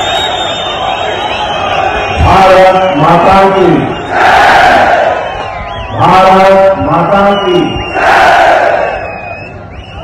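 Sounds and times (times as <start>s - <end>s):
crowd cheering and shouting: 0.0s - 10.0s.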